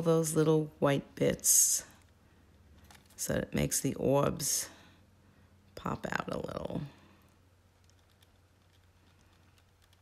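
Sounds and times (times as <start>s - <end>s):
low steady hum: 0.0s - 10.0s
pen ticking on paper: 7.8s - 10.0s.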